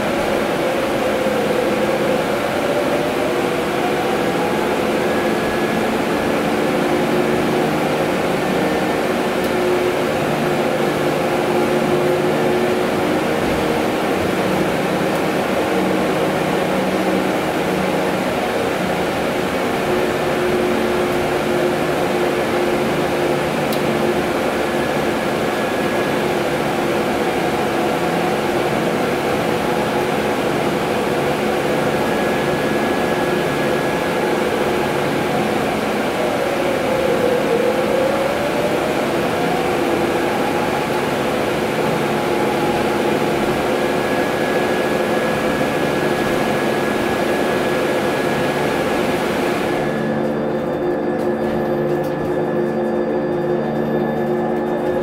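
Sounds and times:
electric drive whine: 0.0 - 55.0.

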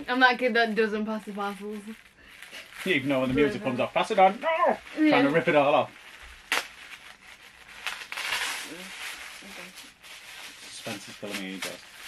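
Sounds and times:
wrapping paper rustling: 0.0 - 12.0.

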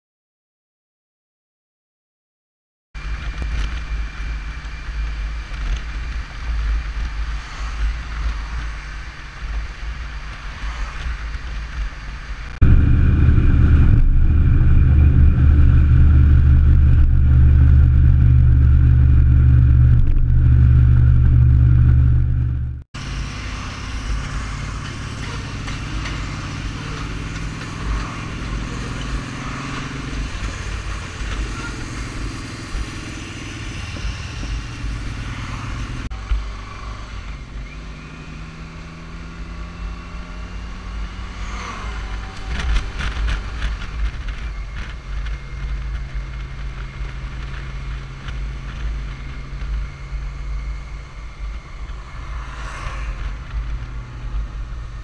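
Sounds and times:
motorcycle engine drone: 3.0 - 55.0
road noise: 3.0 - 55.0
wind noise: 3.2 - 22.8.

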